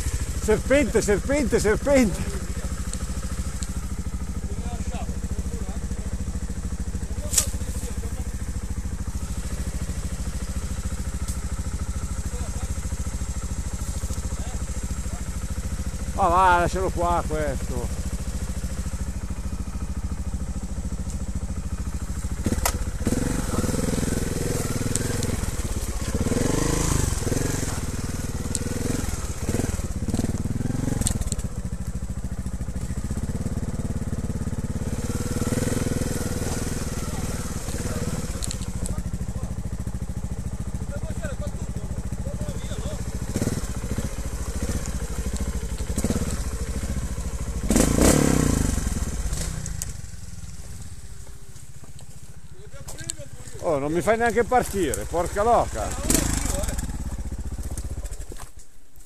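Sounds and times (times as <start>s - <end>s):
motorcycle engine revving: 0.0s - 58.6s
motorcycle clattering over ground: 54.2s - 58.7s.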